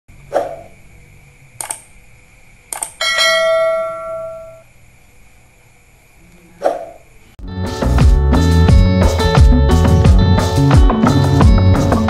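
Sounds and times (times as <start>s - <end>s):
mouse clicks: 1.6s - 1.9s, 2.7s - 3.0s
notification bell ding: 3.0s - 4.6s.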